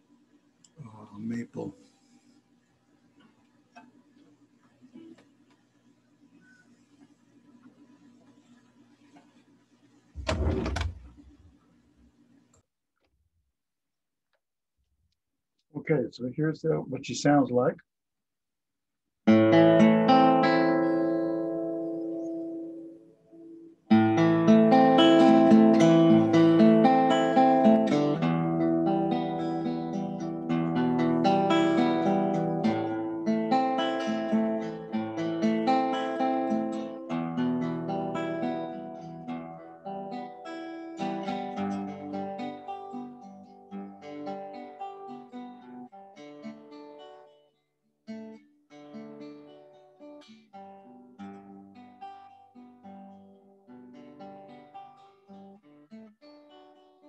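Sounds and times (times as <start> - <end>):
acoustic guitar strummed chords: 19.3 - 47.4, 48.1 - 57.0.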